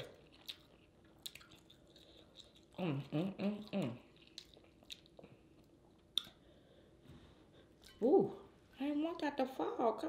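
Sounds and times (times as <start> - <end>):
person chewing: 0.0 - 6.6.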